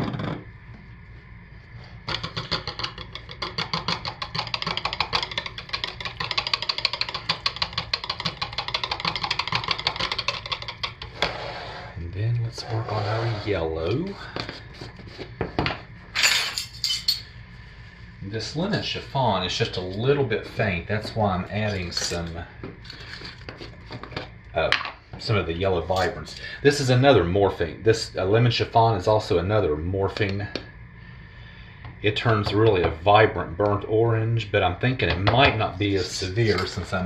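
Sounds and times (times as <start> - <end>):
utensil scraping plastic pitcher: 12.6 - 13.7.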